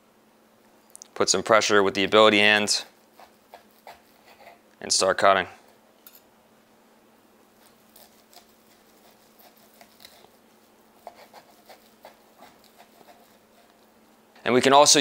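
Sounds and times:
knife sawing through steak: 0:02.5 - 0:04.6, 0:07.6 - 0:14.0
knife scraping wooden board: 0:02.6 - 0:04.6, 0:07.6 - 0:13.9.

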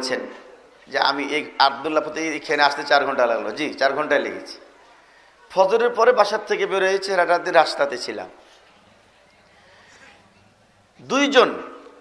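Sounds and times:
man speaking: 0:00.0 - 0:04.6, 0:05.5 - 0:08.4, 0:11.0 - 0:11.9.

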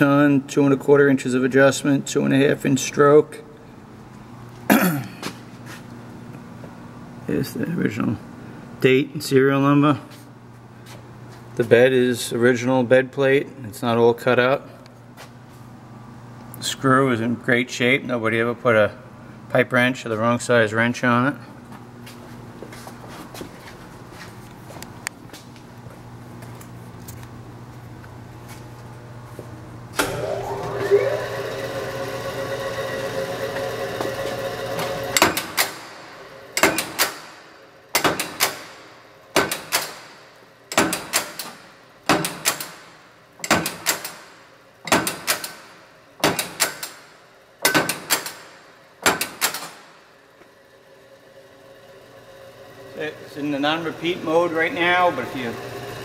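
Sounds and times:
punch press motor whine: 0:29.9 - 0:56.0.

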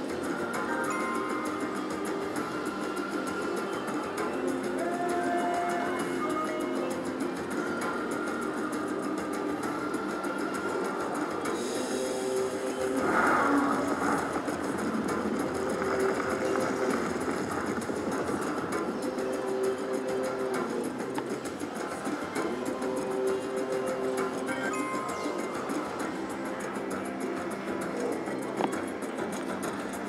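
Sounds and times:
casino noise: 0:00.0 - 0:30.0
slot machine bonus music: 0:24.5 - 0:25.6.

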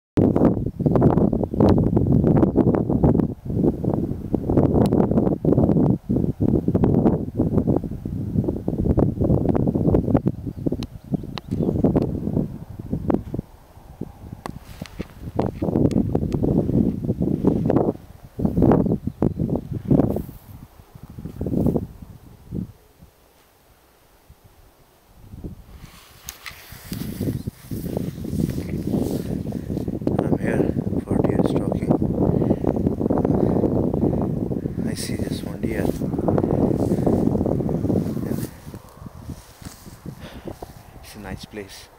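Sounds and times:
gusty wind buffeting microphone: 0:00.2 - 0:41.9
rustling hiss: 0:10.7 - 0:31.0, 0:32.1 - 0:41.9.

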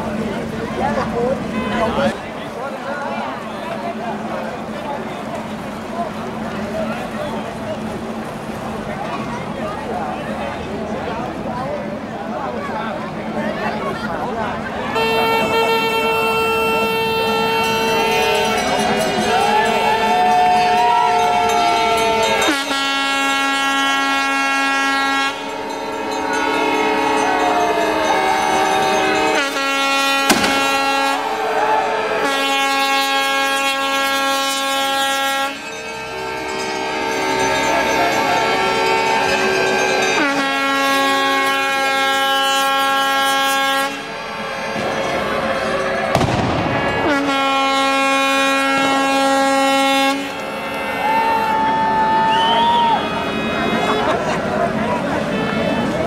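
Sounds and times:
boat horn blasts: 0:14.8 - 0:56.0.

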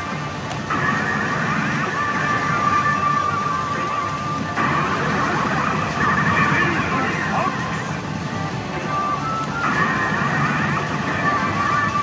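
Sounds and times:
game music: 0:00.0 - 0:12.0
electronic sound effects: 0:00.7 - 0:12.0.

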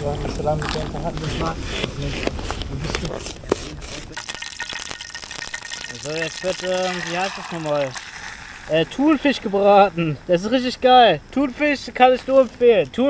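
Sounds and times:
person talking: 0:05.9 - 0:08.0.

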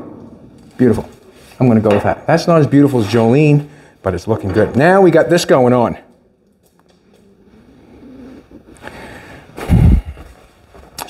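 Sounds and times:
footsteps on concrete floor: 0:09.6 - 0:11.0.

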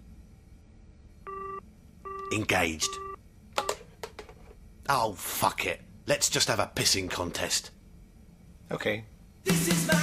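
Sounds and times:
telephone busy tone beep: 0:01.3 - 0:03.8.

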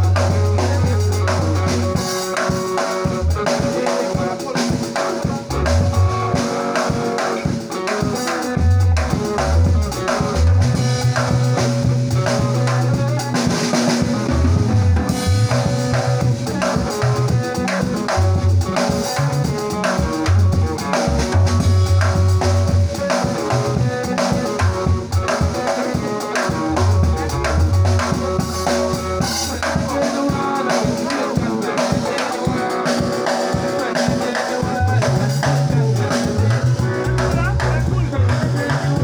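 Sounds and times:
low bass line: 0:00.0 - 0:02.0, 0:05.5 - 0:06.3, 0:08.6 - 0:13.2, 0:14.1 - 0:17.5, 0:20.1 - 0:24.0, 0:24.6 - 0:25.3, 0:26.8 - 0:29.6, 0:34.8 - 0:39.0
drum kit beat: 0:00.0 - 0:39.0
instrumental band music: 0:00.0 - 0:39.0.

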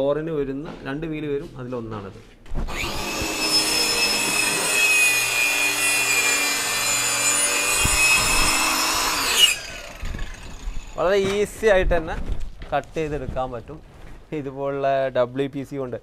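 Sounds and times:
circular saw cutting board: 0:02.7 - 0:11.4.

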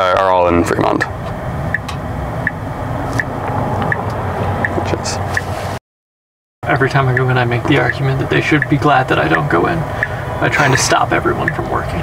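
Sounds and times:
low road rumble: 0:00.0 - 0:05.8, 0:06.6 - 0:12.0.

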